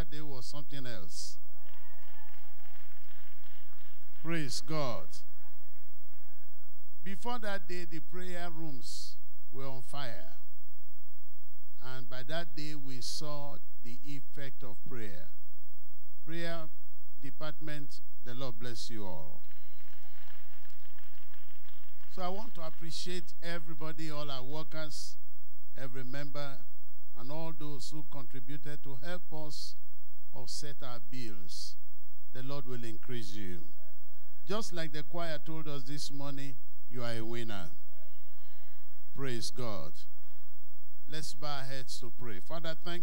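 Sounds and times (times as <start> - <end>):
sound system hum: 0.0 - 43.0
crowd applauding: 1.6 - 4.7, 19.4 - 22.9
scattered clapping: 1.6 - 5.3, 19.4 - 23.4.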